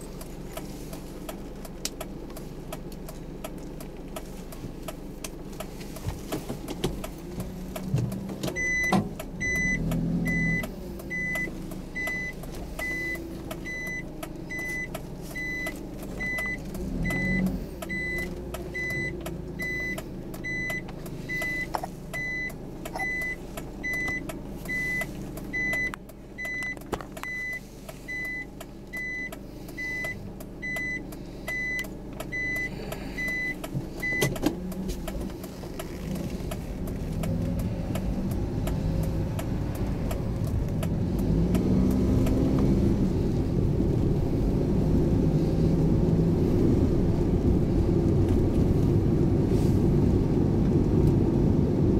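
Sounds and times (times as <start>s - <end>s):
vehicle engine rumbling: 0.0s - 51.9s
high electronic beep: 8.6s - 25.0s.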